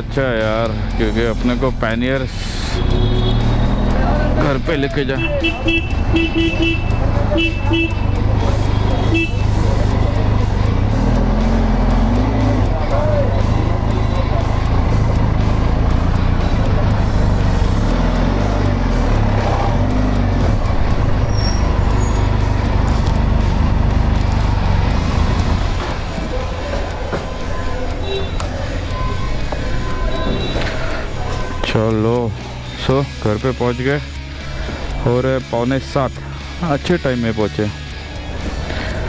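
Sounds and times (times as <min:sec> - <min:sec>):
motorcycle engine running: 0:02.8 - 0:31.6
short horn beep: 0:29.0 - 0:30.8.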